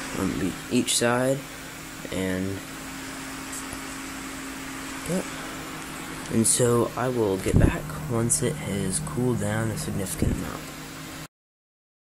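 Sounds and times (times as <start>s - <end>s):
cooling fans whirring: 0.0s - 11.3s
low steady hum: 0.0s - 11.3s.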